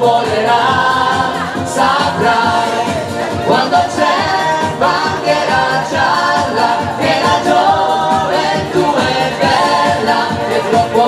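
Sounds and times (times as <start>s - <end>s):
backing track with steady beat: 0.0s - 11.0s
woman and man singing: 0.0s - 11.0s.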